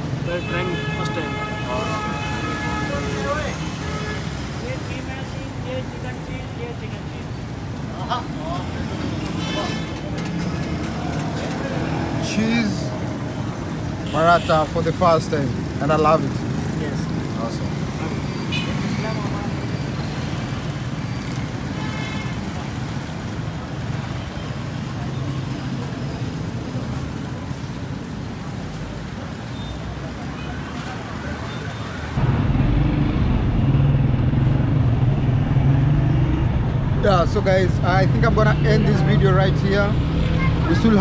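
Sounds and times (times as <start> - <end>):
street traffic hum: 0.0 - 41.0.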